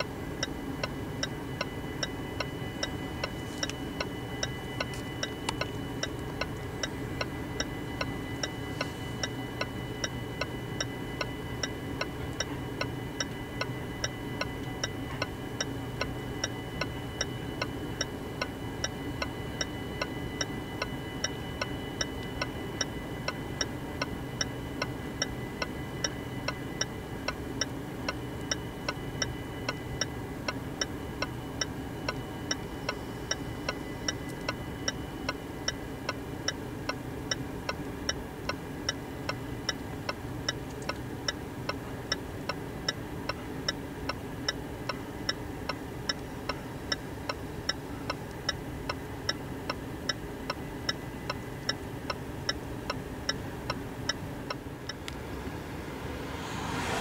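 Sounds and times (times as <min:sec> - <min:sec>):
level-crossing warning bell: 0:00.0 - 0:36.4
freight train rumbling past: 0:55.1 - 0:57.0.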